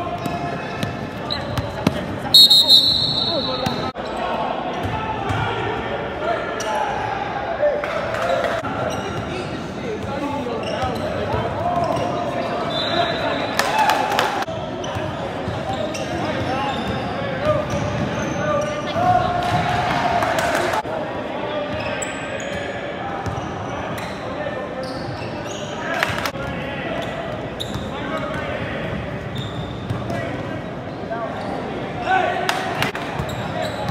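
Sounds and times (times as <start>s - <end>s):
voices of players and spectators: 0.0s - 33.9s
short high shrill tone: 2.4s - 3.9s
basketball bouncing on court: 3.0s - 3.9s.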